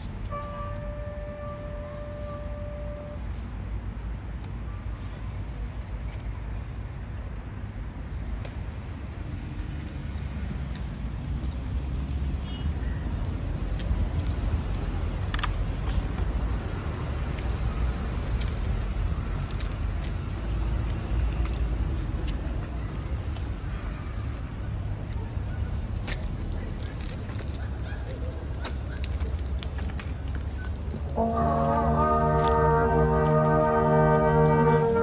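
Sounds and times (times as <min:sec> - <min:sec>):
road traffic rumble: 0:00.0 - 0:35.0.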